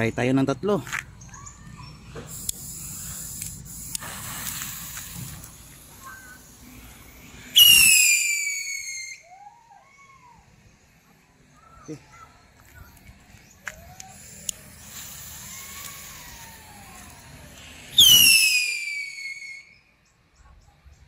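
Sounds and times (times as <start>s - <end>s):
fuses hissing and crackling: 0.0s - 9.2s, 10.0s - 19.8s
whistling rockets lifting off: 1.4s - 10.7s, 13.5s - 19.9s.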